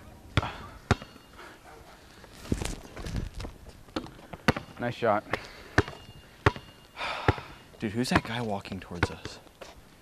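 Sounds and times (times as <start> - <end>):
basketball bouncing on asphalt: 0.3 - 1.3, 3.4 - 9.8.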